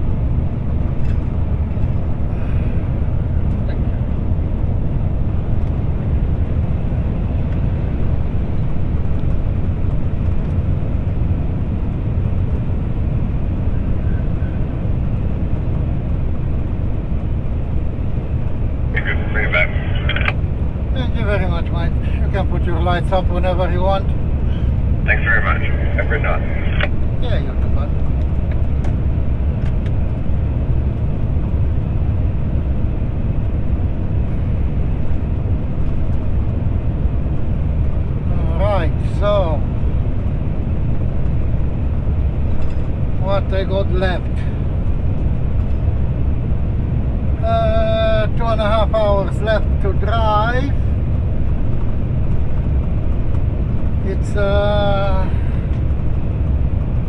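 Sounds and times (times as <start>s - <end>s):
truck diesel engine: 0.0s - 57.0s
person speaking: 19.0s - 20.3s, 25.1s - 27.9s.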